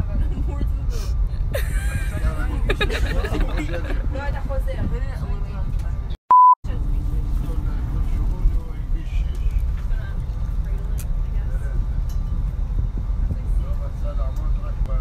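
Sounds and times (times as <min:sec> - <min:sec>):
bus engine and road rumble: 0:00.0 - 0:15.0
passenger chatter: 0:00.0 - 0:15.0.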